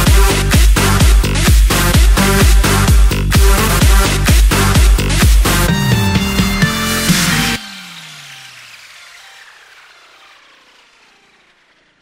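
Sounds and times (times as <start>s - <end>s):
electronic dance beat: 0.0s - 11.0s.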